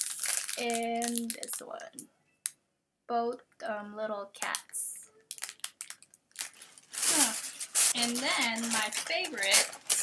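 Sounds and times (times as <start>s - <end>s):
plastic packaging crinkling: 0.0s - 2.0s, 5.3s - 10.0s.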